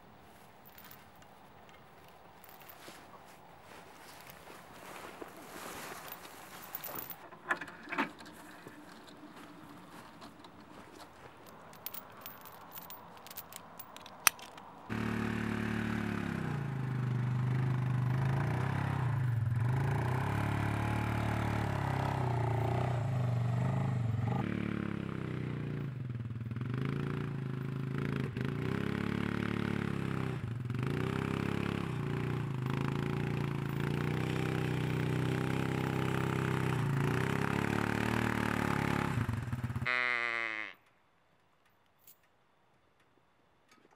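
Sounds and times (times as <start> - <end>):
atv engine running under load: 14.9 - 40.2.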